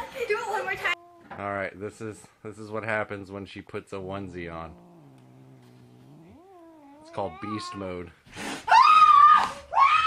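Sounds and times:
cat yowling: 0:00.6 - 0:01.4, 0:04.6 - 0:08.0.

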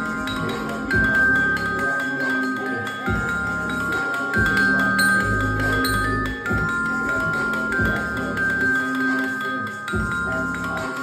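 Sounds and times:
glockenspiel melody: 0:00.0 - 0:11.0
hip-hop track with deep bass: 0:00.0 - 0:11.0.

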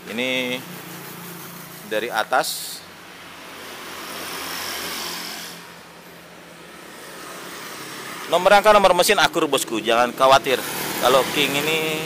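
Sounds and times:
vehicle passing by: 0:00.0 - 0:12.0.

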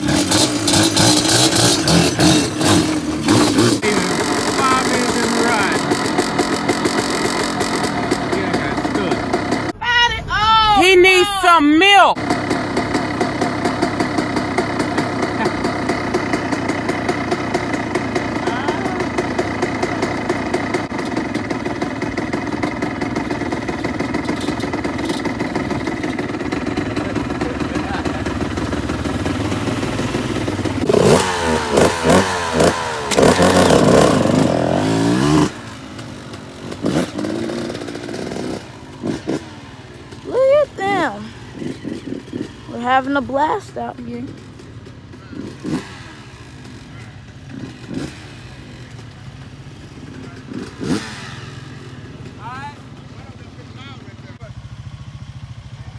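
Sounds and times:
two-stroke engine revving: 0:00.0 - 0:09.8, 0:12.0 - 0:55.9.

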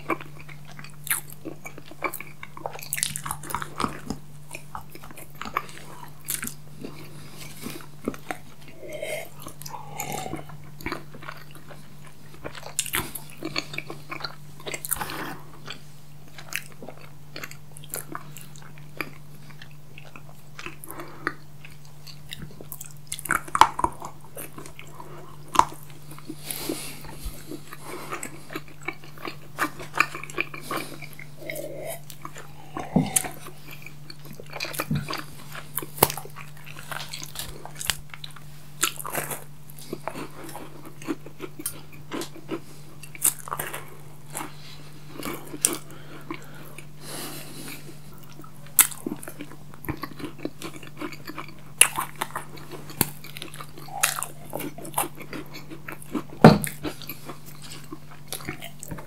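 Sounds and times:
chewing and crunching candy: 0:00.0 - 0:59.0
steady low hum: 0:00.0 - 0:59.0.

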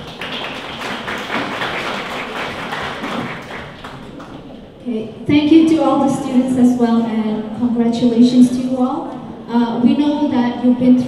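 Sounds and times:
audience clapping: 0:00.0 - 0:04.7.

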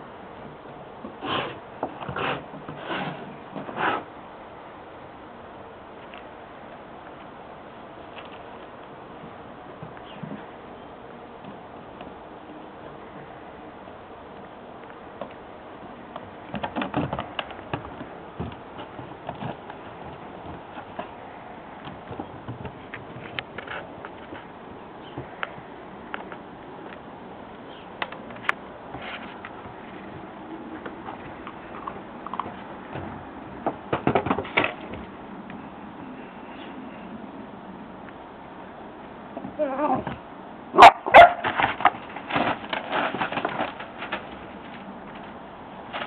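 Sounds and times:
dog claws clicking on wooden decking: 0:16.1 - 0:24.5, 0:41.2 - 0:46.0.

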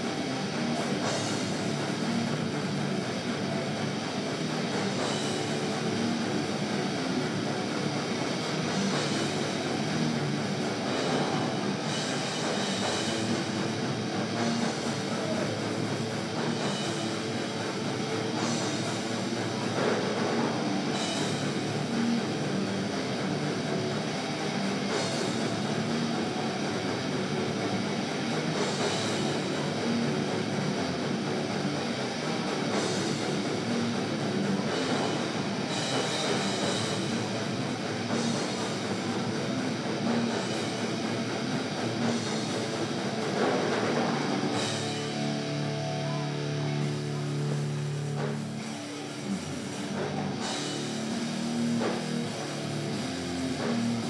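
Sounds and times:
live heavy metal band: 0:00.0 - 0:54.0.

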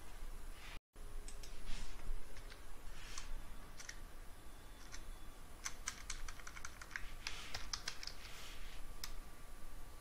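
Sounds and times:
computer keyboard typing: 0:02.3 - 0:02.6, 0:03.2 - 0:04.0, 0:04.8 - 0:08.3.

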